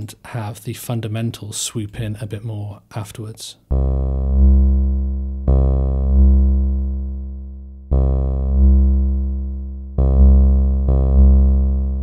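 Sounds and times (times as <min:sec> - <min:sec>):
buzzy synth notes: 0:03.7 - 0:12.0.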